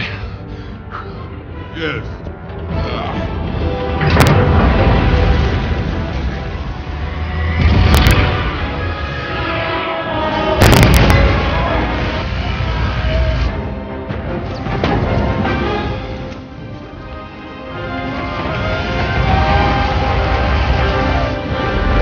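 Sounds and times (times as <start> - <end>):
orchestral film score: 0.0 - 22.0
deep continuous rumble: 2.1 - 17.1
heavy booms: 3.9 - 9.1, 10.4 - 13.7.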